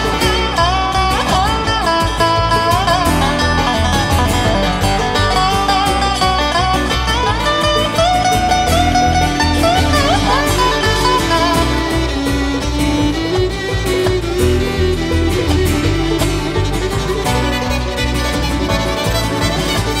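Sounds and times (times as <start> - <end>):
bluegrass string band playing: 0.0 - 20.0.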